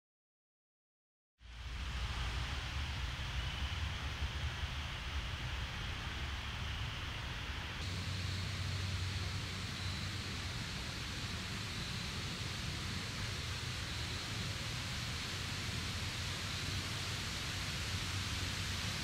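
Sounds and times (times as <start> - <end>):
woodland ambience hiss: 1.4 - 19.0.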